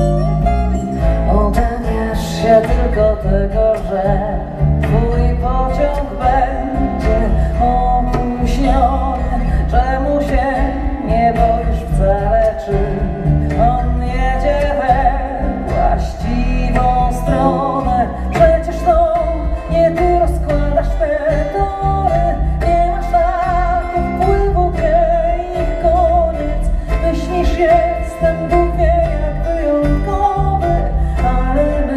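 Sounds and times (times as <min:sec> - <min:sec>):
acoustic instruments playing: 0:00.0 - 0:31.9
hand drum rhythm: 0:00.0 - 0:31.9
woman singing with vibrato: 0:00.0 - 0:31.9.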